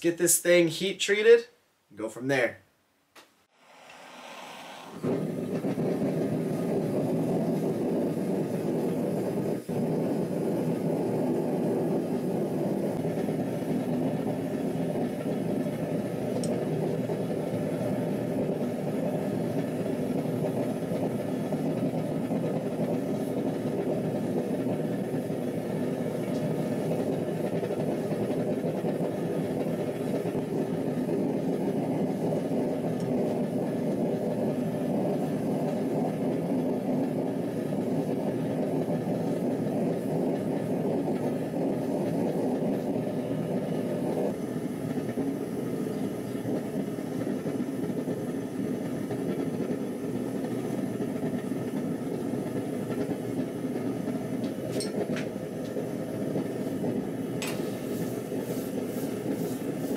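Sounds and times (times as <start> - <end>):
forge burner rushing: 3.5 - 59.9.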